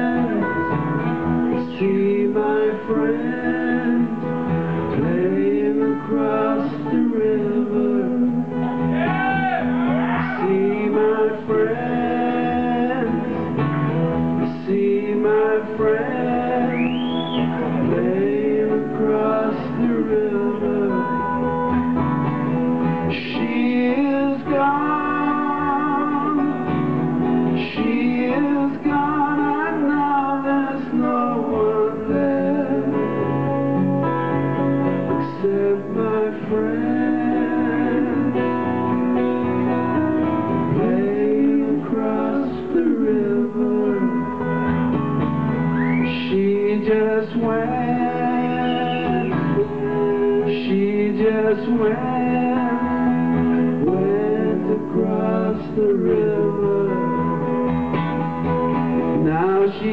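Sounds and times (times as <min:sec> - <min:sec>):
man singing: 0:00.0 - 0:21.8, 0:22.8 - 0:34.2, 0:34.8 - 0:44.6, 0:45.9 - 0:57.7, 0:58.6 - 0:59.9
acoustic guitar strumming: 0:00.0 - 0:59.9.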